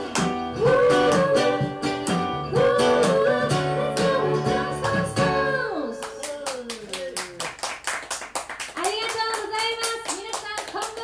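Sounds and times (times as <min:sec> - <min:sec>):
audience clapping: 0:06.0 - 0:11.0.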